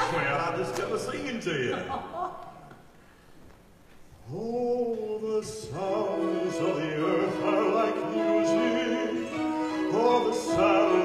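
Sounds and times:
opera singing with vibrato: 4.3s - 11.0s
orchestral accompaniment: 5.7s - 11.0s.

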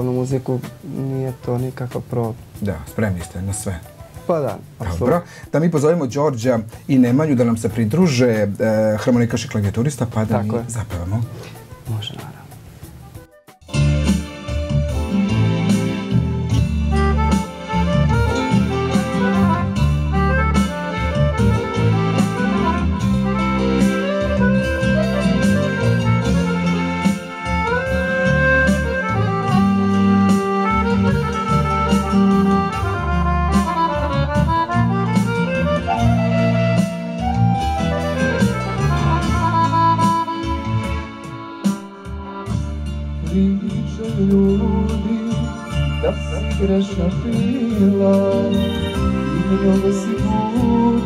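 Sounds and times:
keyboard: 0.0s - 51.0s
steady beat and bass line: 10.3s - 51.0s
accordion: 13.4s - 51.0s.

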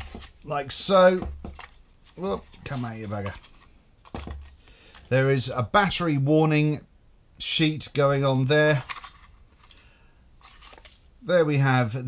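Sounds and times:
paper cards scraping: 0.0s - 5.1s, 8.7s - 9.8s, 10.4s - 11.0s.

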